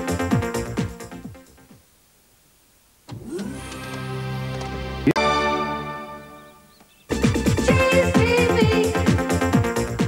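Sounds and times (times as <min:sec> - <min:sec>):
cartoon rising whir and hum: 0:03.1 - 0:04.6.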